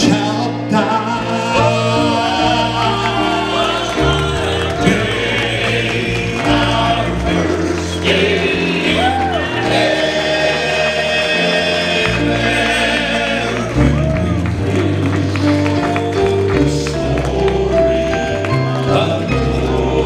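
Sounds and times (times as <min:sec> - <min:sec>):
keyboard accompaniment with bass: 0:00.0 - 0:20.0
male vocal group singing gospel: 0:00.0 - 0:20.0.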